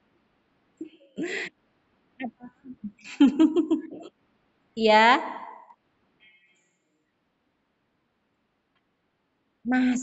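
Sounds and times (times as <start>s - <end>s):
quiet voice sounds: 0.8s - 1.5s.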